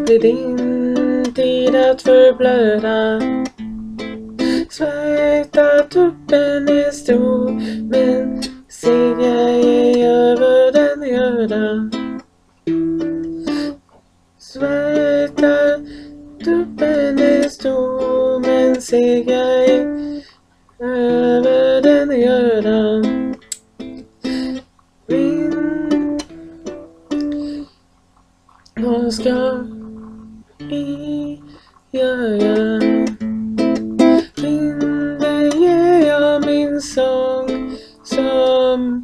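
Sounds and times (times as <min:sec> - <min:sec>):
woman singing: 0:00.0 - 0:03.5, 0:04.5 - 0:12.1, 0:14.4 - 0:20.0, 0:20.8 - 0:23.3, 0:24.5 - 0:26.3, 0:28.7 - 0:29.9, 0:30.6 - 0:33.2, 0:34.0 - 0:39.0
guitalele plucked and strummed: 0:00.0 - 0:39.0.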